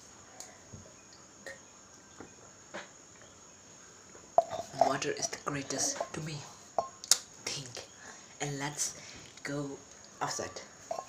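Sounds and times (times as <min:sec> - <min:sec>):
person gulping water: 0:04.4 - 0:04.9.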